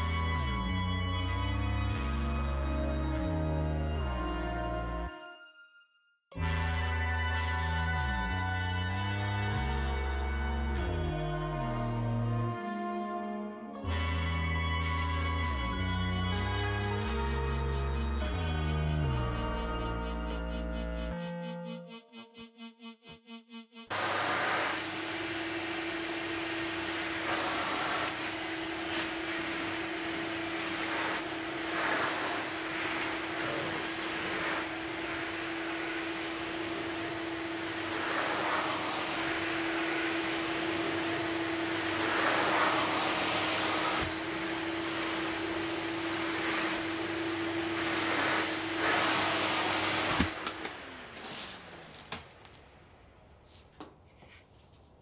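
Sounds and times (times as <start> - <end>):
vacuum cleaner running: 23.9 - 52.8
vacuum motor winding down: 23.9 - 52.8.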